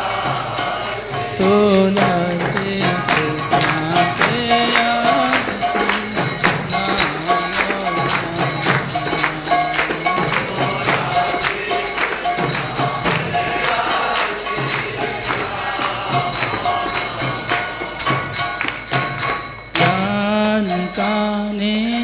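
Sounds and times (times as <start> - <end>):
hand cymbals ringing: 0.0 - 22.0.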